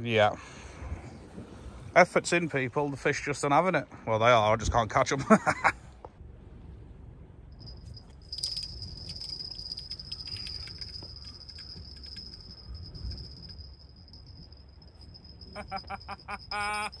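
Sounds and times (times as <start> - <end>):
fishing reel whining and clicking: 8.3 - 15.4.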